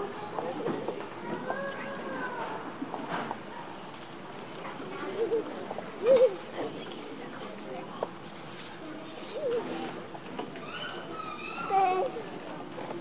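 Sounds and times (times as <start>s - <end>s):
audience murmur: 0.0s - 13.0s
young child calling: 11.3s - 12.2s.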